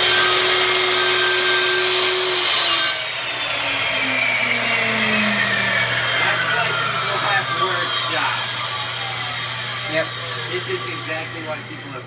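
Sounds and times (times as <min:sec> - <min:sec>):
miter saw motor humming: 0:00.0 - 0:12.0.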